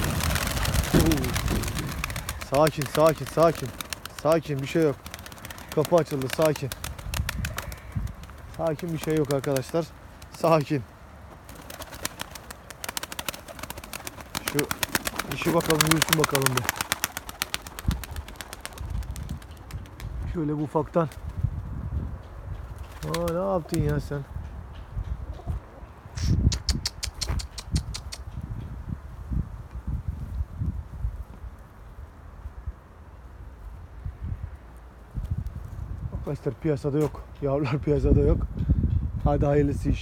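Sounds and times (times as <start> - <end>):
wind rumble on microphone: 0.0 - 3.6, 6.7 - 9.3, 17.7 - 40.0
pigeon wings flapping: 0.0 - 10.7, 11.4 - 20.2, 22.8 - 24.1.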